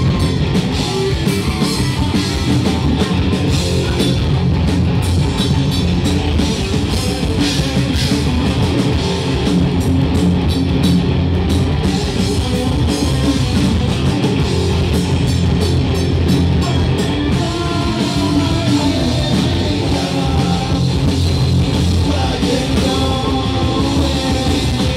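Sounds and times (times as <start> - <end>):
bass guitar: 0.0 - 24.9
drum kit: 0.0 - 24.9
electric guitars: 0.0 - 24.9.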